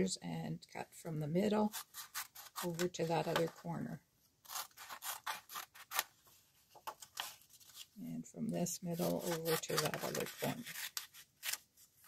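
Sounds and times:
scissors cutting paper: 1.6s - 3.5s, 4.4s - 6.1s, 8.9s - 11.6s.

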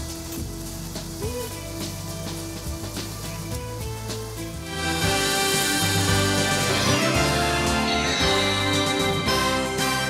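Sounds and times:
background music: 0.0s - 10.0s
meat sizzling on grill: 0.0s - 10.0s.

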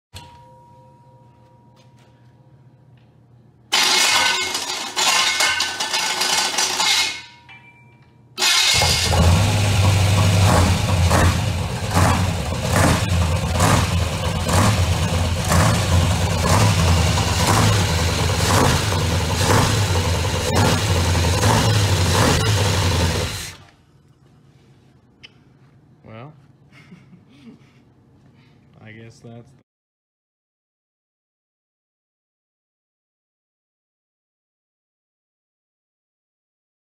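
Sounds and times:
unmuffled engine running: 8.8s - 23.4s.

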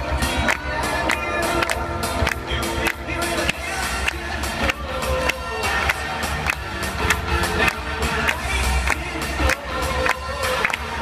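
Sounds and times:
up-tempo dance music: 0.0s - 11.0s.

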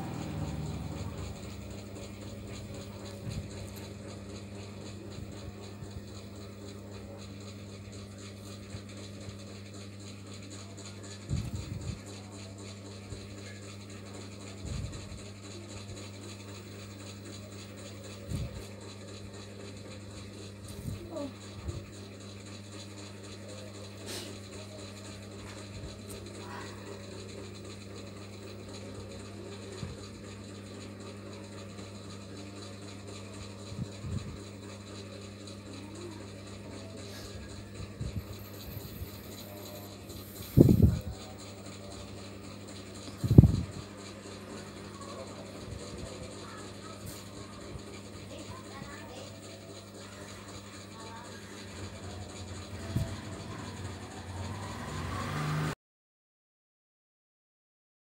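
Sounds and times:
low engine hum with hiss: 0.0s - 6.0s, 50.3s - 55.8s
low machine hum: 0.0s - 55.8s.

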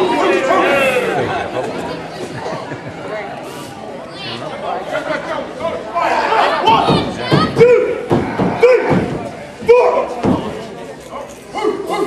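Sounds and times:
man shouting in echoing hall: 6.0s - 10.2s.

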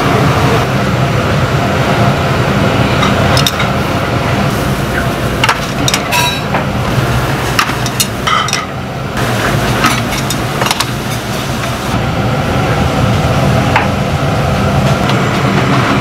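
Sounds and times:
gas burners rumbling: 0.0s - 16.0s
metal ladles clinking on pots: 5.4s - 6.6s, 7.6s - 8.7s.

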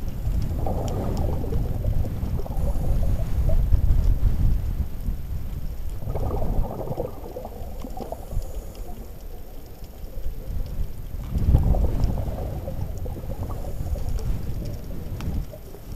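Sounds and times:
low rumble of water: 0.0s - 15.9s
regulator exhaust bubbles underwater: 0.0s - 15.9s.

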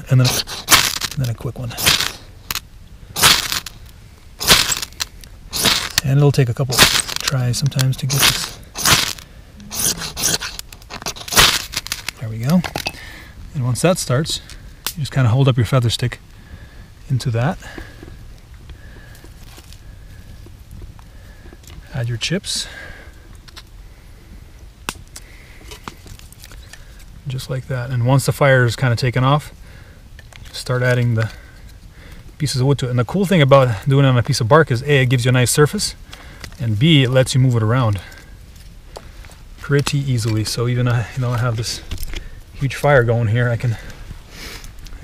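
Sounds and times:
fire steel rod rasping strokes: 0.0s - 2.2s, 8.0s - 12.2s
kindling fire crackling: 0.0s - 45.0s
wood chips clicking: 0.2s - 2.6s, 3.2s - 3.8s, 4.4s - 6.1s, 6.7s - 12.9s
wood snapping: 0.2s - 6.1s, 6.7s - 12.9s.

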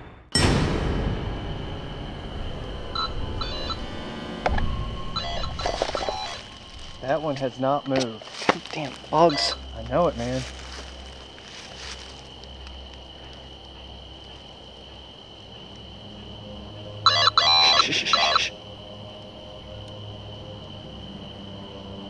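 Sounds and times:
low hum: 0.4s - 7.3s
high-pitched insect trill: 1.1s - 22.0s.

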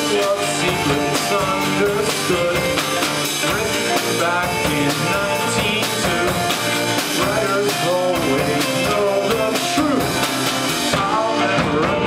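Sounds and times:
drum kit beat: 0.0s - 12.0s
electric guitars: 0.0s - 12.0s
live indie pop band: 0.0s - 12.0s.

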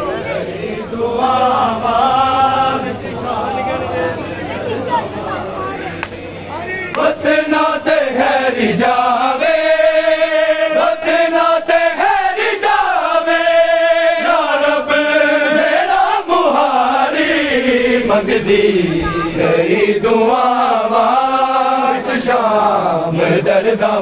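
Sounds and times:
men chanting a lament: 0.0s - 24.0s
chest-beating slaps: 6.0s - 6.2s.

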